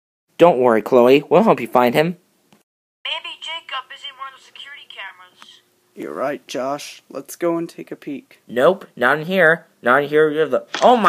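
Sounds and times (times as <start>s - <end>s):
faint steady hum: 3.1s - 10.6s.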